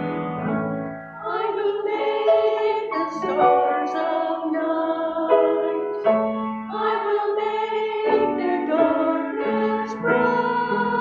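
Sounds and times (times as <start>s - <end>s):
choir singing a hymn: 1.2s - 11.0s.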